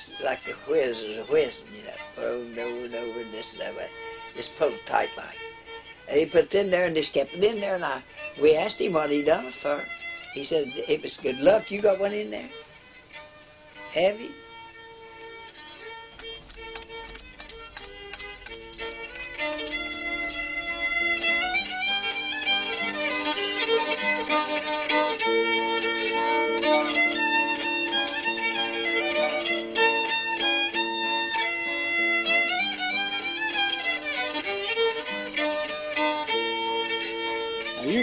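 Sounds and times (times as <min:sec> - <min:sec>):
fiddle playing old-time tune: 0:00.0 - 0:38.0.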